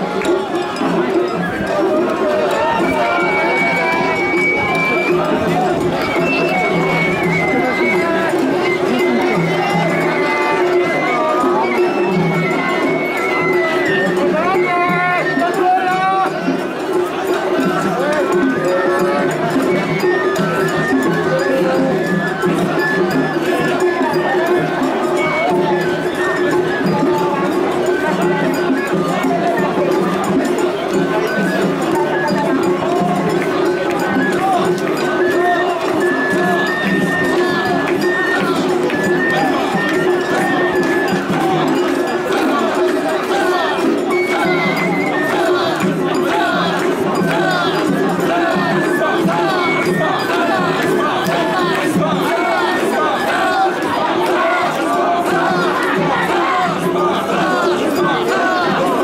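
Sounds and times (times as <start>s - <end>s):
crowd chanting and shouting: 0.0s - 59.0s.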